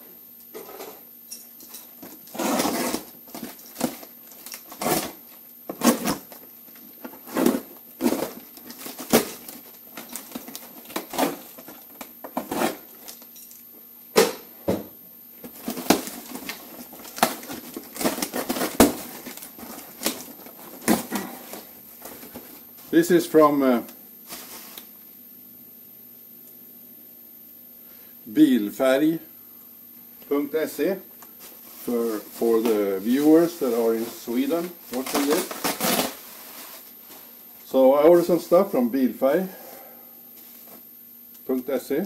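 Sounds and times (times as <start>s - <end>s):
packing tape tearing: 2.3s - 6.4s, 7.2s - 13.2s, 15.5s - 21.3s, 34.9s - 36.2s.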